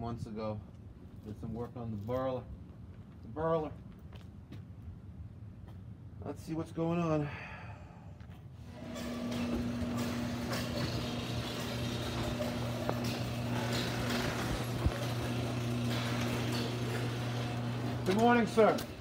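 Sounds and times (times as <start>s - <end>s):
garage door opener motor hum: 8.6s - 19.0s
garage door rumbling: 8.6s - 19.0s.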